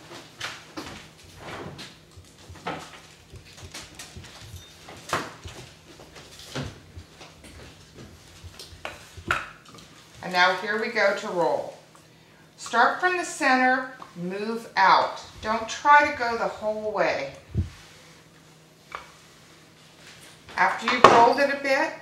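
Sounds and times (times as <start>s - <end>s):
footsteps: 0.0s - 10.6s
faint steady hum: 0.0s - 22.0s.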